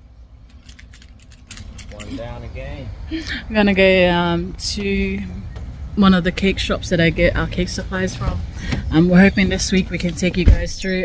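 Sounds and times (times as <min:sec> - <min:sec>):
keys jangling: 0:00.5 - 0:02.4
person speaking: 0:01.9 - 0:03.6.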